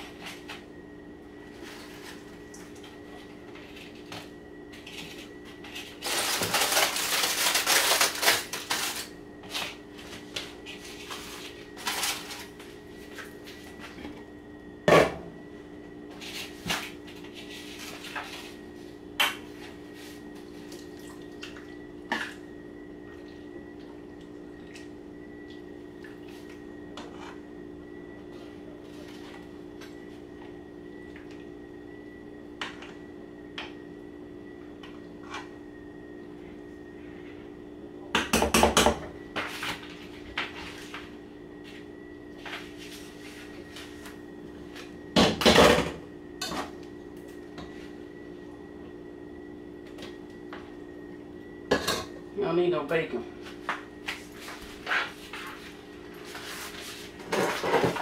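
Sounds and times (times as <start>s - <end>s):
steady hum: 0.0s - 58.0s.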